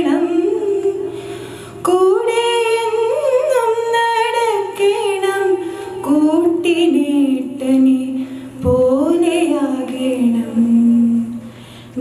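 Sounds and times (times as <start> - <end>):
woman singing a prayer: 1.8 - 11.4.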